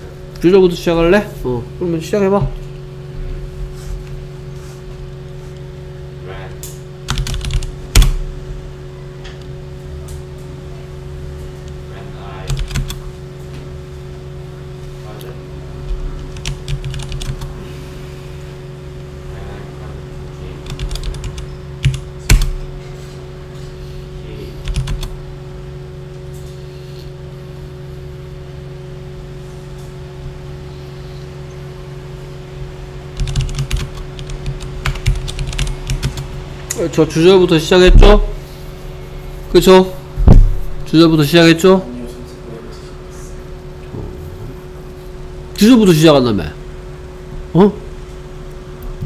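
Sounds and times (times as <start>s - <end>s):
low electrical hum: 0.0s - 49.0s
typing on computer keyboard: 7.0s - 8.2s, 12.5s - 13.0s, 16.2s - 17.5s, 20.6s - 22.6s, 24.6s - 25.1s, 33.2s - 36.2s.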